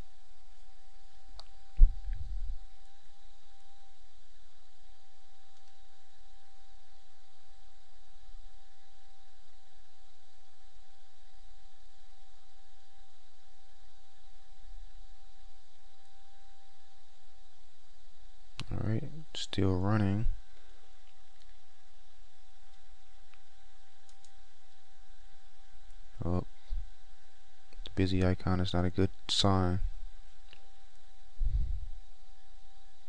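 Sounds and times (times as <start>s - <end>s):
faint whine: 0.0s - 33.0s
low hum: 0.0s - 33.0s.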